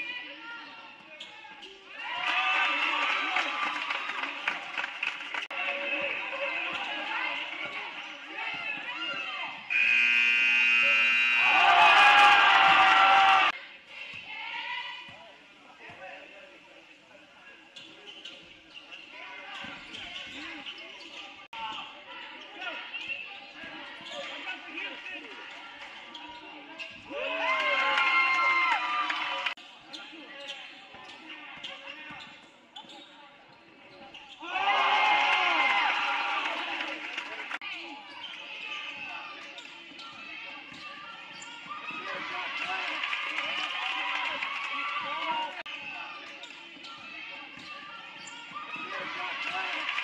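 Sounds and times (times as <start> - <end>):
sneakers squeaking on court: 0.1 - 2.0, 6.6 - 11.4, 17.5 - 27.1, 29.6 - 34.5, 37.7 - 42.8, 45.6 - 49.8
crowd cheering: 2.0 - 7.6, 9.7 - 13.6, 27.1 - 29.6, 34.4 - 37.6, 42.0 - 45.7, 48.7 - 50.0
scoreboard buzzer horn: 9.7 - 12.4.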